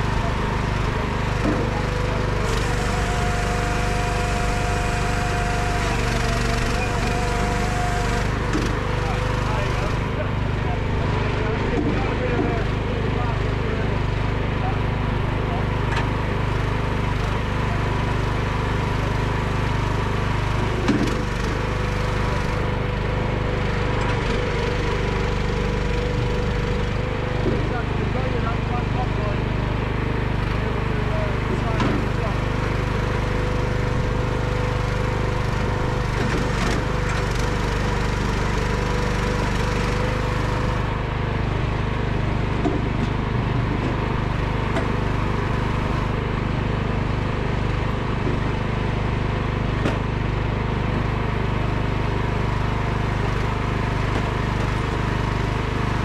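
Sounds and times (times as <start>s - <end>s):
firewood processor engine running: 0.0s - 56.0s.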